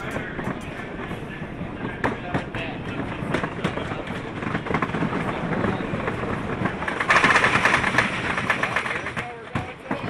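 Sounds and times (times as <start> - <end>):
roller coaster wheels rumbling: 0.0 - 10.0.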